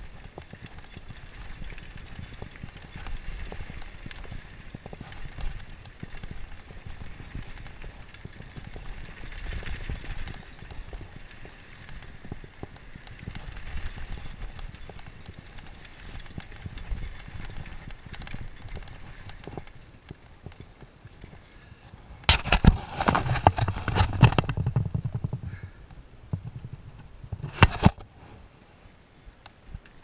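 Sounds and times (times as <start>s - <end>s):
bike frame and chain rattling: 0.0s - 25.6s
bike tyres rumbling on dirt: 0.0s - 27.9s.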